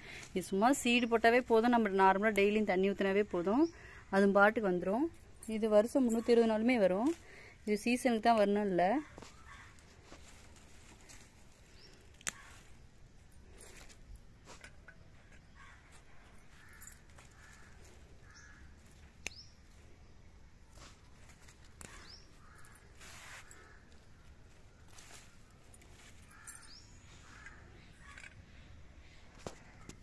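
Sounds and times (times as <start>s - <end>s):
bean pods snapping: 8.3s - 12.8s, 16.6s - 19.8s, 20.6s - 23.0s
birds chirping: 14.7s - 30.0s.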